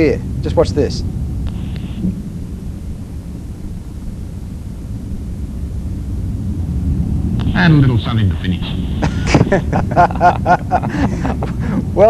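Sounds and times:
distant light aircraft rumble: 0.0s - 12.0s.

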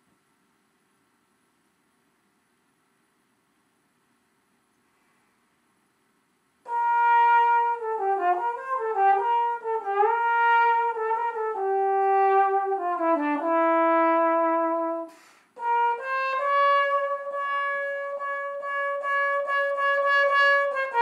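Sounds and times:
solo trombone melody: 6.7s - 21.0s.

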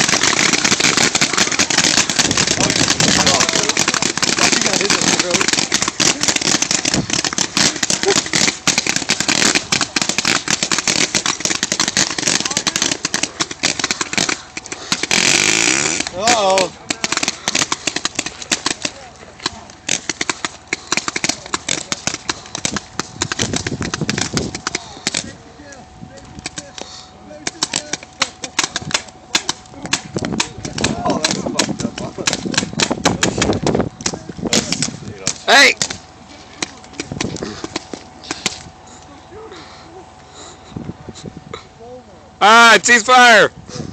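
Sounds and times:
rifles firing: 0.0s - 25.4s, 26.4s - 38.7s.

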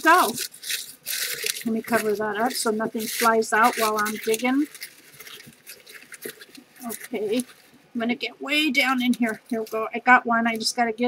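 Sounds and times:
paper slips rustling in a box: 0.0s - 7.7s
person speaking: 0.0s - 11.0s.

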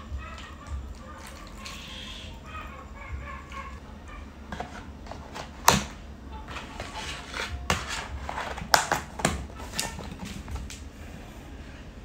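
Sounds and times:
plastic lid creaking and rubbing: 4.5s - 10.8s.

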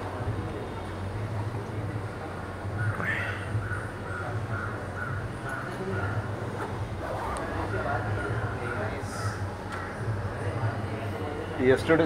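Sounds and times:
faint background voices: 0.0s - 12.0s.

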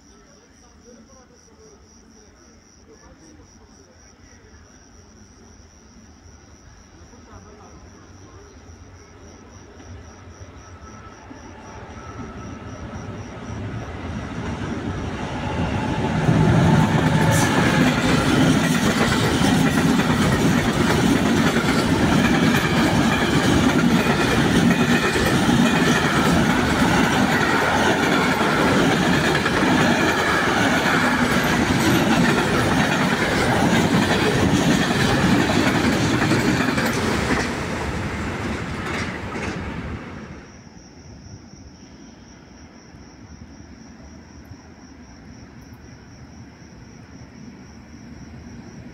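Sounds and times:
freight train passing: 8.2s - 40.7s, 43.9s - 48.9s
wheels clacking over rails: 14.0s - 40.2s.

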